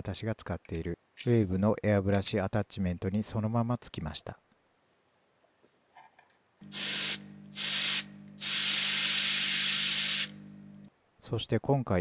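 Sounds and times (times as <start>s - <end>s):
steady low hum: 6.6s - 10.9s
airbrush hissing air: 6.7s - 10.5s.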